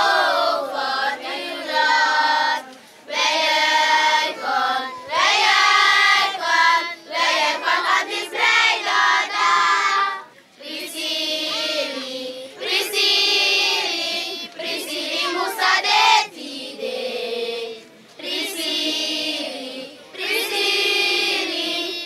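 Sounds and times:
children singing together: 0:00.0 - 0:22.0.

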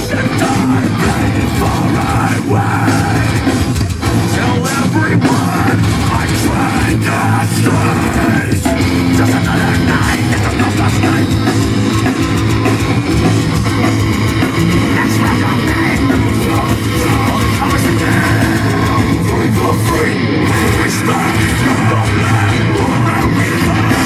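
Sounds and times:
bass guitar: 0:00.0 - 0:24.0
distorted electric guitars: 0:00.0 - 0:24.0
drum kit: 0:00.0 - 0:24.0.

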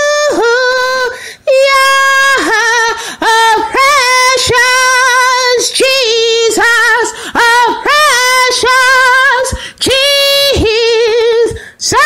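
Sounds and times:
woman singing solo: 0:00.0 - 0:12.0
singer breathing: 0:01.2 - 0:01.5, 0:03.0 - 0:03.2, 0:07.1 - 0:07.4, 0:09.5 - 0:09.8, 0:11.5 - 0:11.8.

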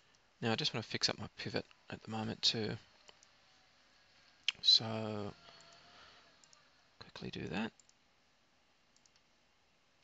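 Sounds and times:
computer mouse clicks: 0:05.4 - 0:06.7, 0:07.4 - 0:08.0, 0:08.9 - 0:09.3.

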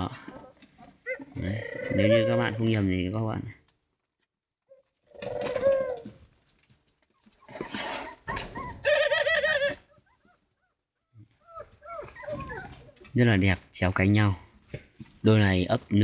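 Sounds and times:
doves cooing: 0:00.0 - 0:02.8, 0:04.7 - 0:06.3, 0:07.1 - 0:13.2.

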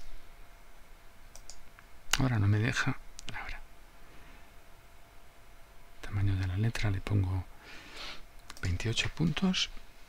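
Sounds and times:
computer mouse clicks: 0:01.3 - 0:02.2, 0:08.4 - 0:08.7.

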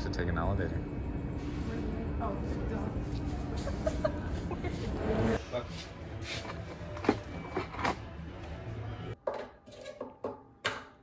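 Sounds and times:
hardware store background hum: 0:00.0 - 0:11.0.

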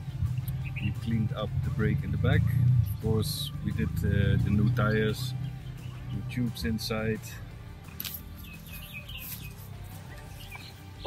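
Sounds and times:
small birds chirping: 0:00.1 - 0:07.5, 0:08.1 - 0:11.0.

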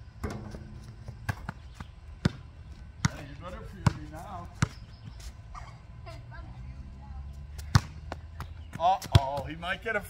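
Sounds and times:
low steady rumble: 0:00.0 - 0:08.8.

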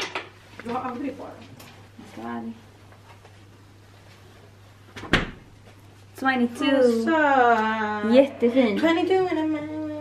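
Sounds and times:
refrigerator door thud: 0:05.0 - 0:05.5.

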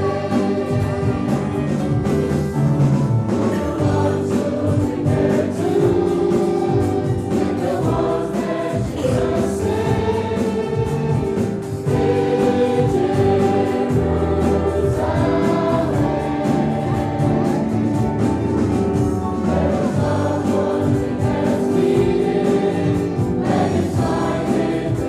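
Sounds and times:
choir singing a hymn: 0:00.0 - 0:25.0
instrumental accompaniment: 0:00.0 - 0:25.0.

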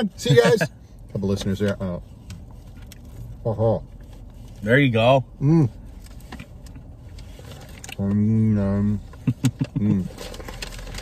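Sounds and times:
car cabin rumble: 0:00.0 - 0:11.0
paper wrapping crinkling: 0:10.0 - 0:11.0.

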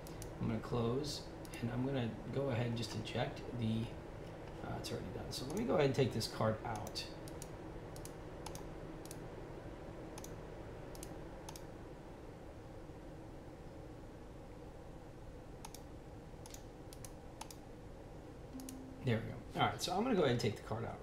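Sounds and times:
computer mouse clicks: 0:00.0 - 0:00.4, 0:06.7 - 0:09.2, 0:10.2 - 0:11.7, 0:15.6 - 0:17.6
steady low hum: 0:00.0 - 0:21.0.

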